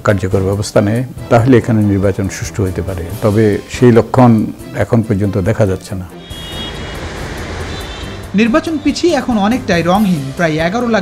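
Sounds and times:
street traffic hum: 0:06.1 - 0:10.9.

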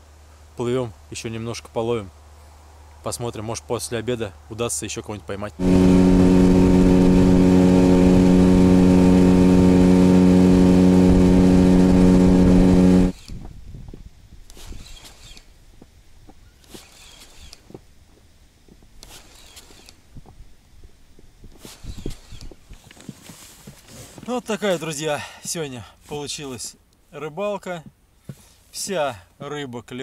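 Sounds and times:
outboard motor running: 0:05.6 - 0:13.2.

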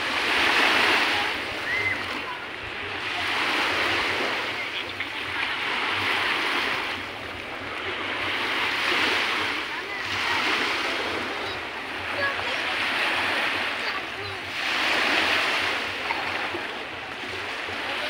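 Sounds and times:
waves lapping on beach: 0:00.0 - 0:18.0.

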